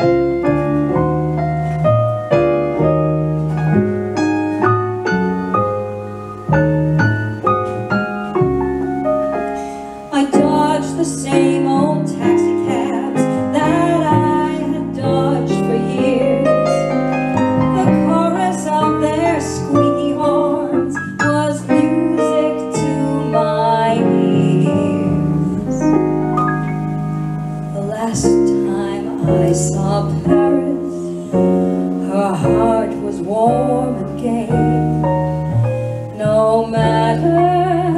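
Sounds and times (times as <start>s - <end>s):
double bass: 0.0s - 37.9s
keyboard piano: 0.0s - 37.9s
woman singing: 10.1s - 17.0s, 17.8s - 25.9s, 27.7s - 31.4s, 32.0s - 35.0s, 36.2s - 37.9s.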